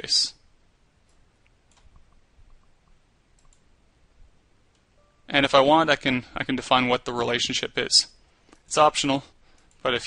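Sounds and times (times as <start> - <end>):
computer mouse clicks: 1.0 - 3.7, 9.5 - 9.8.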